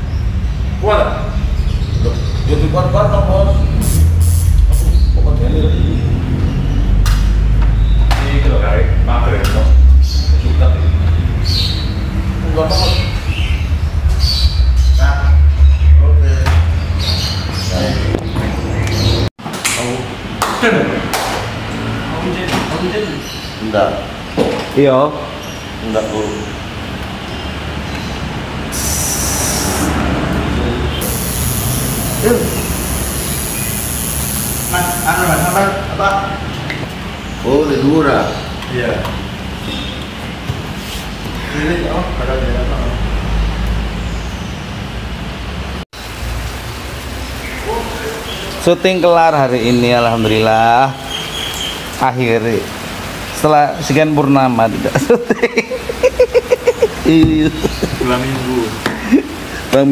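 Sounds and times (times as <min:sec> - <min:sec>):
indistinct voices talking: 0:00.8 - 0:19.3, 0:28.7 - 0:36.5, 0:55.8 - 0:59.9
low rumble and hiss: 0:12.4 - 0:16.8
indistinct voices: 0:28.7 - 0:36.6.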